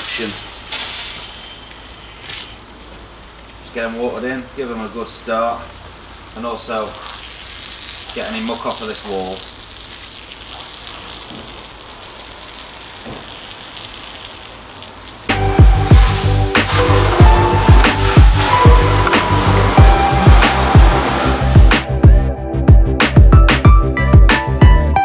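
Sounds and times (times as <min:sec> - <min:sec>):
hose nozzle spraying water on wall: 0:00.0 - 0:22.0
background music with steady beat: 0:15.3 - 0:25.0.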